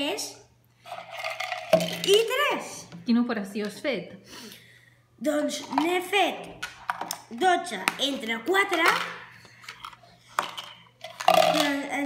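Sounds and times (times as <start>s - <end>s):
boy's voice: 2.0s - 2.9s, 5.2s - 6.5s, 7.3s - 9.2s, 11.3s - 12.0s.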